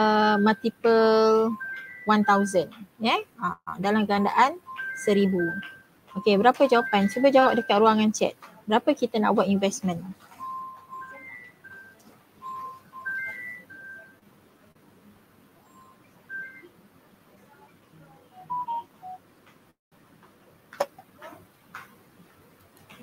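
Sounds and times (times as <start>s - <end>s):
short electronic beeps: 0.2s - 2.7s, 4.6s - 8.0s, 10.4s - 14.2s, 15.7s - 16.7s, 18.4s - 19.2s.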